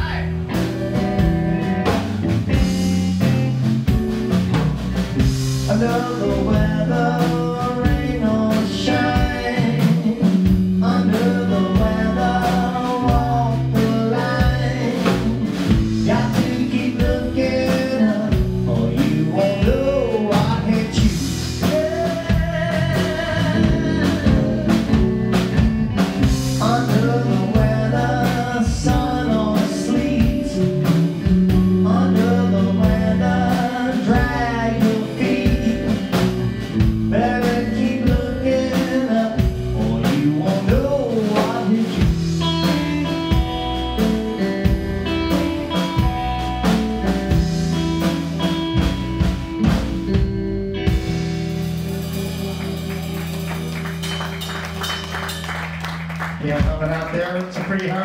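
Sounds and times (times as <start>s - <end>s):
blues band playing: 0.0s - 58.0s.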